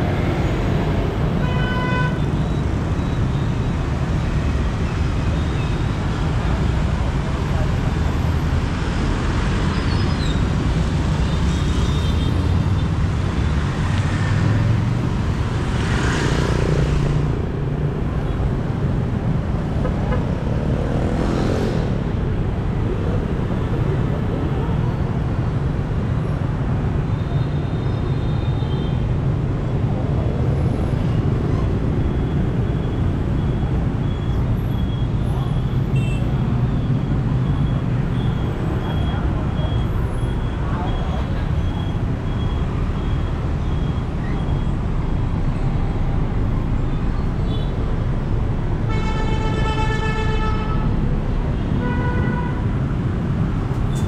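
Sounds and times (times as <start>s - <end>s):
cars passing: 0.0s - 27.1s
motorbike and scooter engines: 0.0s - 49.8s.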